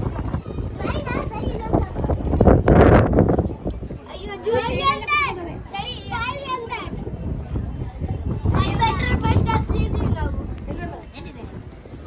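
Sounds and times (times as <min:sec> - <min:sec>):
people talking: 0:00.0 - 0:12.0
wind buffeting microphone: 0:00.0 - 0:12.0.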